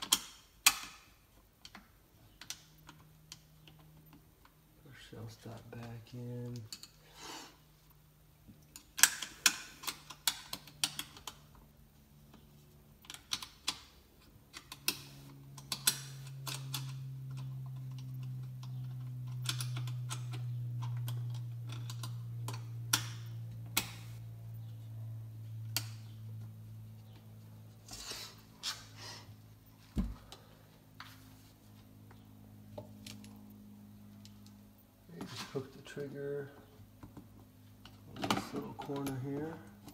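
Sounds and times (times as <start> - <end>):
low steady hum: 0.0 - 39.9.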